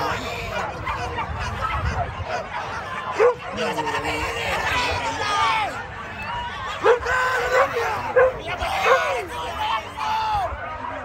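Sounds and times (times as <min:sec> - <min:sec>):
crowd chatter: 0:00.0 - 0:11.0
dog barking: 0:03.1 - 0:03.5.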